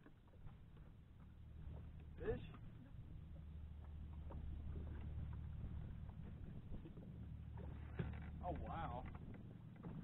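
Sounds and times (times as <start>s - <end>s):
fishing boat engine rumble: 0.0s - 10.0s.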